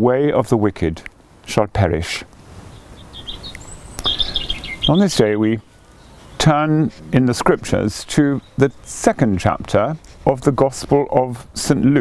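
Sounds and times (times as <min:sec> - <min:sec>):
small birds chirping: 0:02.2 - 0:12.0.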